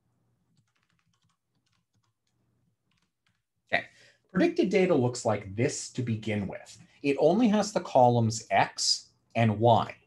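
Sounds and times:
keyboard typing: 0:00.0 - 0:03.6.

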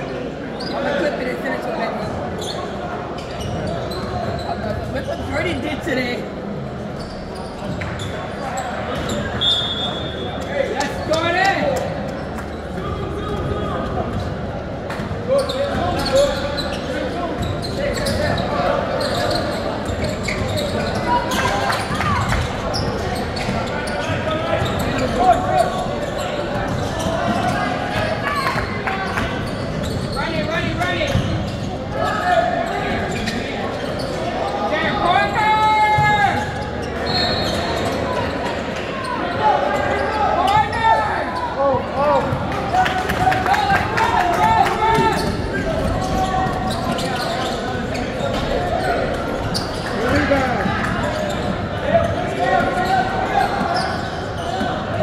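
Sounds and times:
players shouting: 0:23.6 - 0:55.0.

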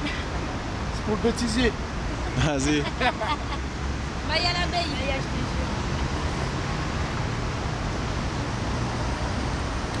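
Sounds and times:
city traffic noise: 0:00.0 - 0:10.0.

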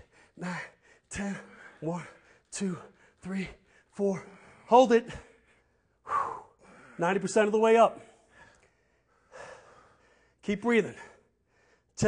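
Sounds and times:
man breathing out hard: 0:03.7 - 0:07.0, 0:08.0 - 0:10.4.

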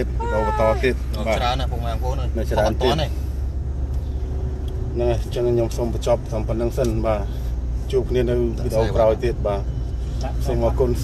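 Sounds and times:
car engine rumble: 0:00.0 - 0:11.0
road noise inside car: 0:00.0 - 0:11.0.

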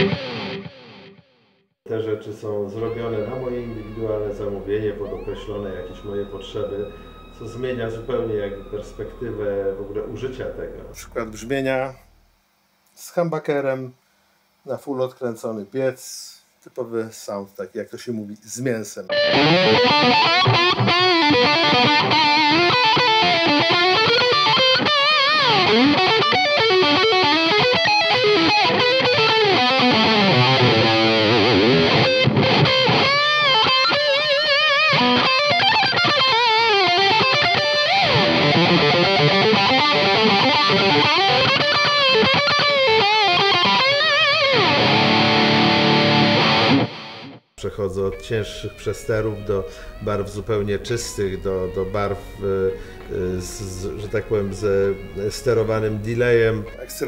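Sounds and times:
overdriven electric guitar lead: 0:00.0 - 0:01.2, 0:02.8 - 0:10.9, 0:19.1 - 0:47.4.

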